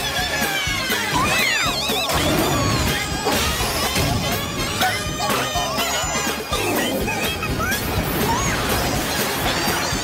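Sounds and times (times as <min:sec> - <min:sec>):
cartoon music: 0:00.0 - 0:10.0.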